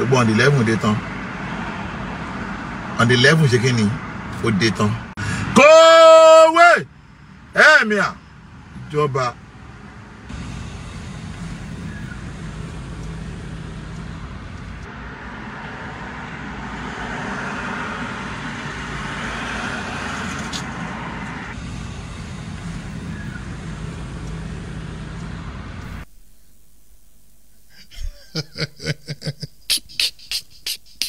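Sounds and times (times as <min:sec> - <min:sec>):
vehicle noise inside car: 0:00.0 - 0:26.1.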